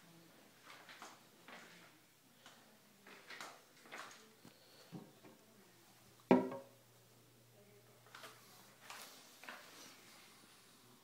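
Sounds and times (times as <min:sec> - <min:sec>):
knock on porcelain toilet: 0:06.3 - 0:06.7.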